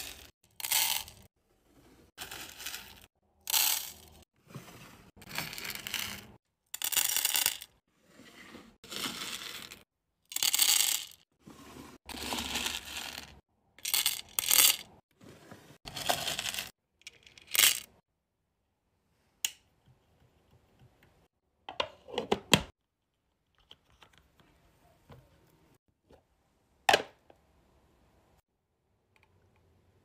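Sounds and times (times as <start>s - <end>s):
wax beads rattling into metal pot: 0.0s - 1.2s, 2.2s - 4.1s, 10.3s - 11.2s, 12.1s - 14.8s.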